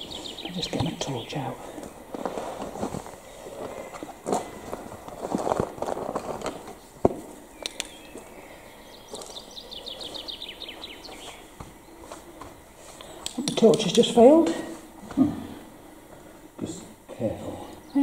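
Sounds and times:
bird trilling: 7.5s - 11.5s.

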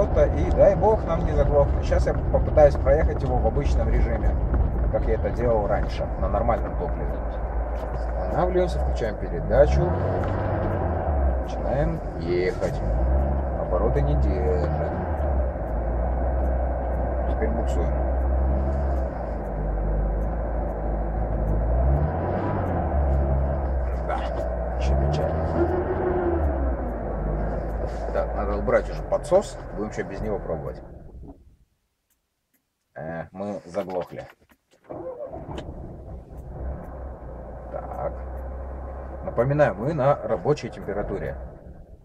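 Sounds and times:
car engine low rumble: 0.0s - 42.0s.

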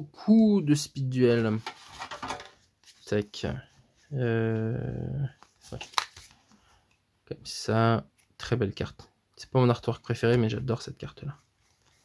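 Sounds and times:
trading cards rustling: 5.3s - 6.6s.

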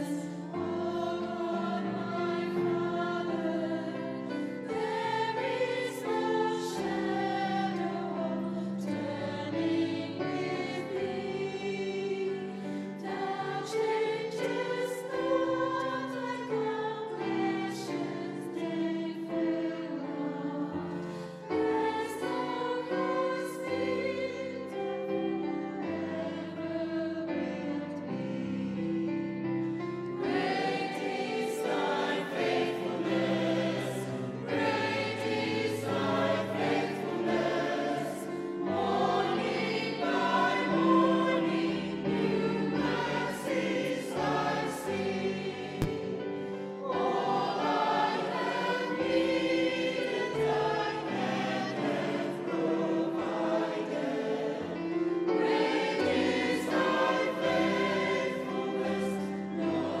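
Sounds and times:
mixed choir singing: 0.0s - 60.0s.

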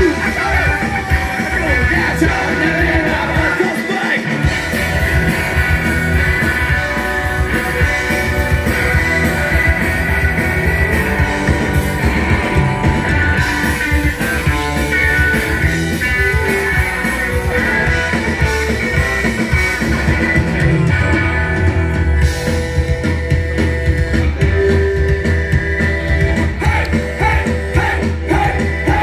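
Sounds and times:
electric guitar: 0.0s - 29.0s
live rock band instrumental: 0.0s - 29.0s.

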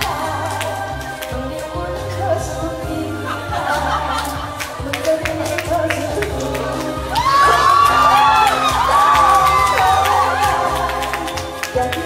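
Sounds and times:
backing music: 0.0s - 12.0s
audience cheering and whooping: 6.9s - 11.6s.

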